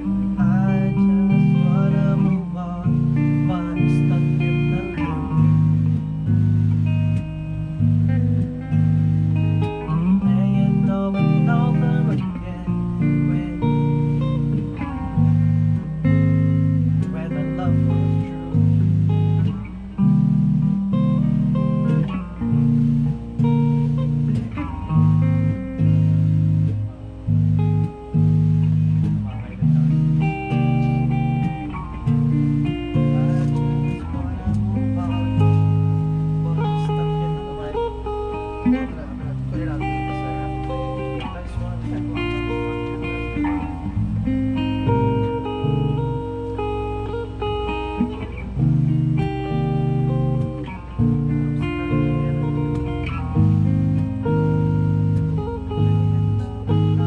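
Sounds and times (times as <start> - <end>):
electric bass low notes: 0.0 - 57.0
electric guitar riff: 0.0 - 57.0.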